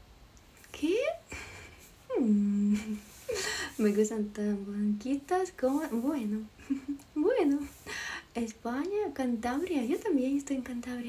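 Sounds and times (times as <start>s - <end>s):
woman speaking: 0.7s - 1.4s, 2.1s - 11.0s
woman humming: 0.8s - 5.2s.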